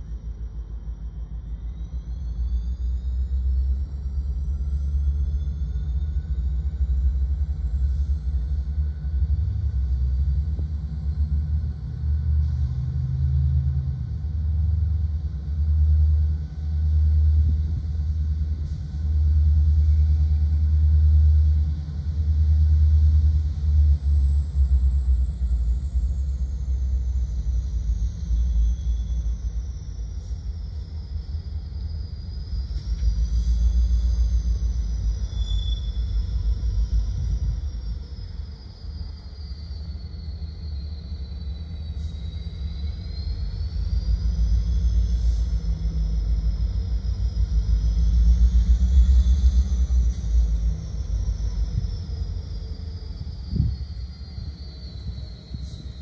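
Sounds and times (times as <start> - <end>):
diesel locomotive engine rumble: 0.0 - 56.0
high whine: 13.2 - 56.0.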